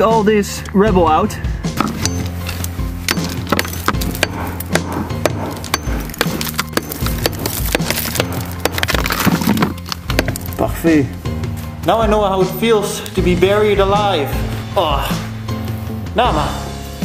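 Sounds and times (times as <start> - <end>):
background music with low bass: 0.0 - 17.0
digging tool striking stones: 1.7 - 10.7.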